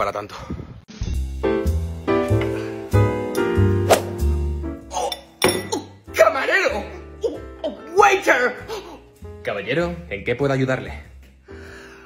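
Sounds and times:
background music: 0.9 - 12.0.

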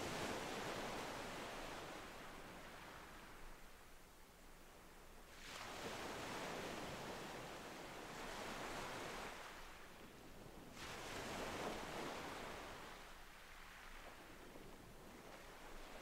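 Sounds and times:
soft ocean waves washing in: 4.6 - 16.0.

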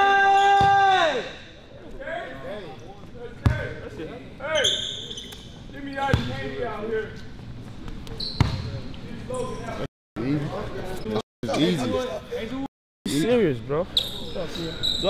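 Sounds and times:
sneaker squeaks: 2.3 - 3.7, 4.4 - 9.9, 13.9 - 15.0.

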